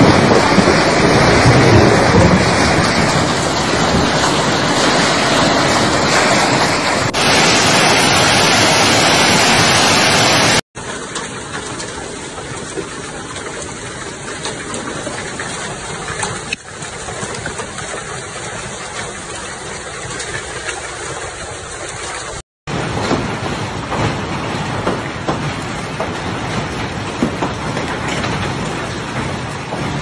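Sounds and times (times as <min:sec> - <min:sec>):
hailstones ticking: 0:00.0 - 0:20.9, 0:21.7 - 0:30.0
hail and rain hissing: 0:00.0 - 0:30.0.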